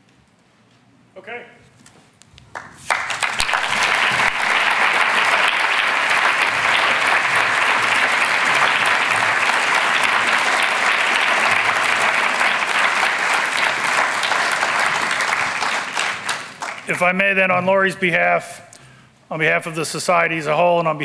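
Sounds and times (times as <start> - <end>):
large audience applauding: 2.5 - 17.3.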